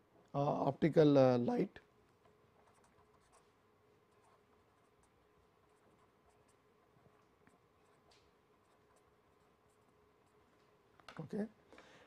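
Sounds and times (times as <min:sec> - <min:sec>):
faint steady hum: 0:00.0 - 0:12.0
marker scratching on paper: 0:02.6 - 0:10.5.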